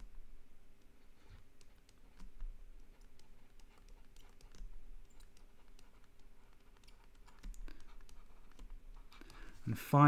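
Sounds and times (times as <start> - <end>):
stylus tapping on tablet screen: 0.0 - 9.5.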